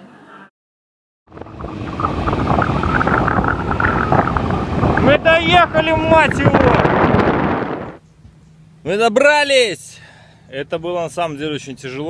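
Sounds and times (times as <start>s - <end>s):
scooter road noise: 1.3s - 8.0s
wind buffeting microphone: 1.3s - 8.0s.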